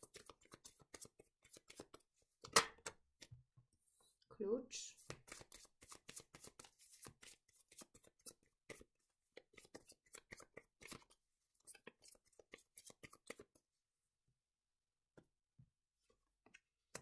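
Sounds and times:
cards being shuffled: 0:00.0 - 0:02.1, 0:05.0 - 0:13.6.

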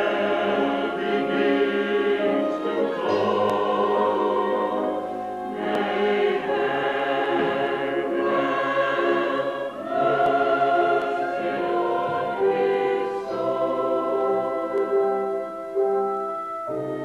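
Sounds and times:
opera chorus singing: 0:00.0 - 0:17.0.

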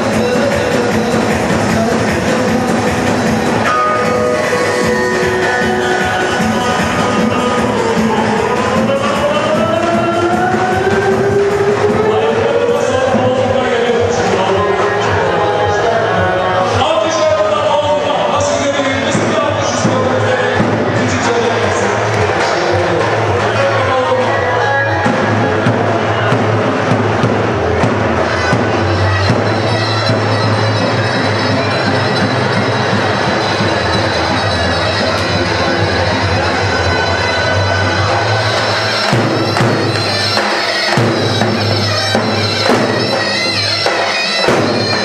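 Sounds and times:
live band music: 0:00.0 - 0:45.0.

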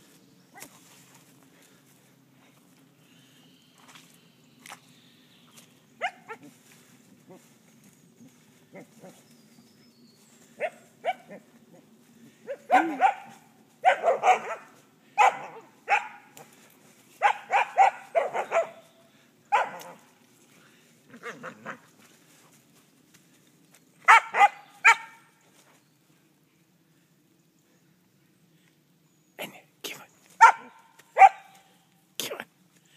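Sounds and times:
dog barking: 0:06.0 - 0:06.5, 0:12.5 - 0:16.3, 0:17.2 - 0:18.8, 0:19.5 - 0:20.0, 0:24.1 - 0:25.2, 0:30.4 - 0:31.6.

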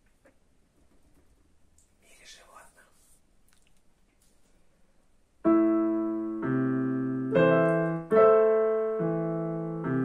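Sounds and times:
faint breathy whisper: 0:02.0 - 0:03.2.

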